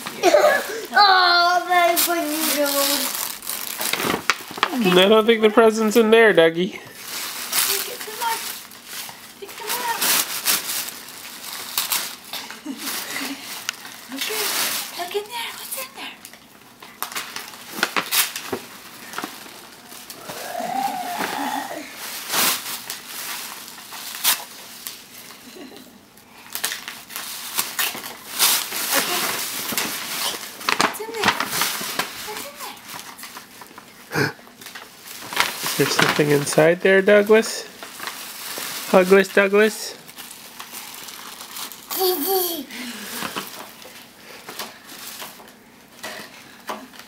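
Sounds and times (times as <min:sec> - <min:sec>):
tissue paper crinkling: 0:00.2 - 0:05.9, 0:06.9 - 0:16.0, 0:17.0 - 0:25.7, 0:26.4 - 0:34.0, 0:34.6 - 0:46.0.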